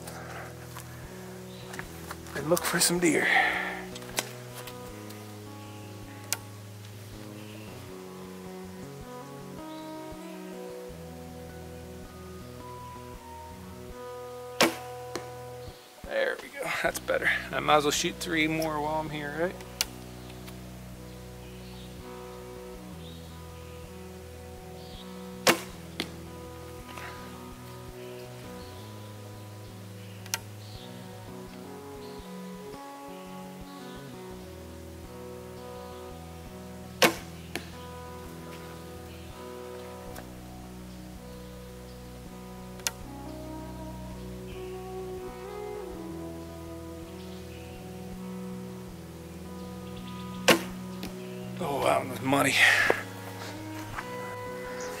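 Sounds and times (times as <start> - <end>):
background music: 0.0 - 55.0
bow string snap: 3.9 - 5.2, 14.6 - 15.4, 19.6 - 20.6, 25.4 - 26.2, 30.2 - 30.5, 37.0 - 37.8, 42.8 - 43.2, 50.4 - 51.2
arrow hitting target: 14.6 - 15.2, 25.4 - 26.1, 37.0 - 37.6, 50.5 - 50.8.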